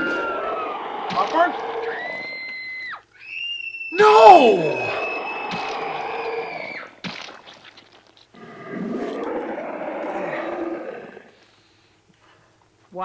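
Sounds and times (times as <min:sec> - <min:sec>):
long pitched cry: 0:00.0 - 0:07.0
wet smacks: 0:07.0 - 0:08.4.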